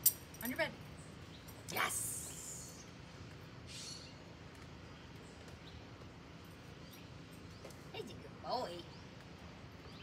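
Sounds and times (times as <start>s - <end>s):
distant birds chirping: 0.0s - 10.0s.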